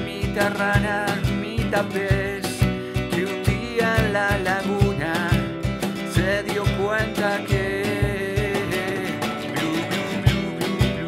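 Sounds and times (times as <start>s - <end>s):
acoustic nylon-string guitar song: 0.0s - 11.0s.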